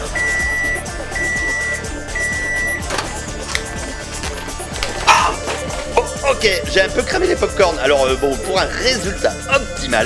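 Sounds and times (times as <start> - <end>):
microwave beeps: 0.0 - 2.9
music playing: 0.0 - 10.0.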